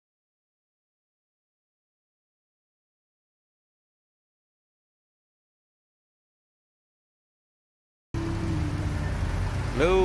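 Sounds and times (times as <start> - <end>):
car engine idling: 8.2 - 10.0.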